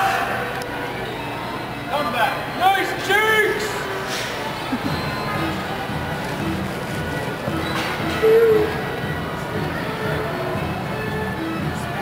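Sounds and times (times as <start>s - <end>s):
carousel music: 0.4s - 12.0s.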